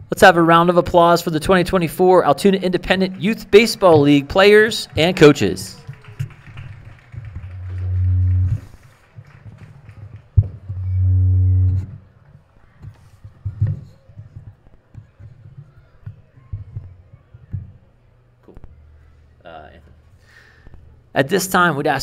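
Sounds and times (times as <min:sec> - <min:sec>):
faint crowd applause: 0:02.6 - 0:11.0
low horn blasts: 0:07.3 - 0:08.8, 0:10.7 - 0:12.0.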